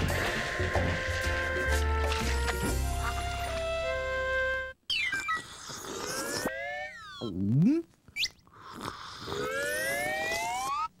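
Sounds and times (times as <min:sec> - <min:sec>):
cartoon falling whistle: 0:04.9 - 0:05.5.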